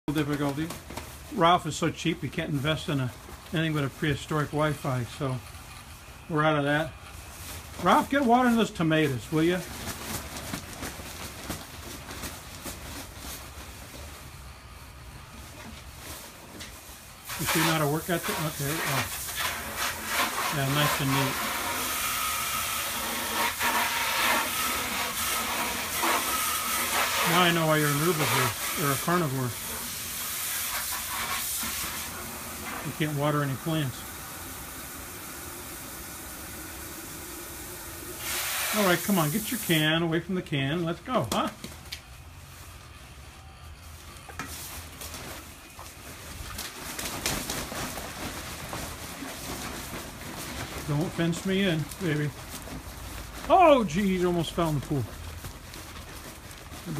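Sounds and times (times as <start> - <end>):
rustling and handling noises: 0.0 - 21.9, 23.1 - 34.8, 38.1 - 56.9
hose water running into can: 17.2 - 40.1.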